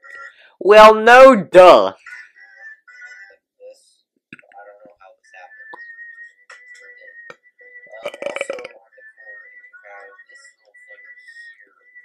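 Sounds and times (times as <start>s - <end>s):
person burping: 8.0s - 8.7s.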